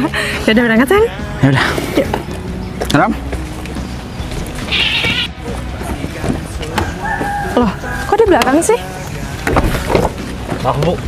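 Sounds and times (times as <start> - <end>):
soft background music: 0.0 - 11.0
high-pitched animal call: 4.7 - 5.4.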